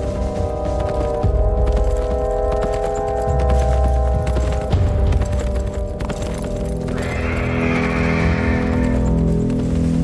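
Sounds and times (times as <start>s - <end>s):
horse whinnying: 6.9s - 9.2s.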